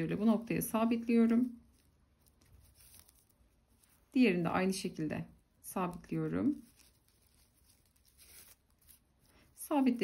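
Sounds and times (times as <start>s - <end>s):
faint rustle: 0.2s - 4.6s, 5.8s - 10.0s.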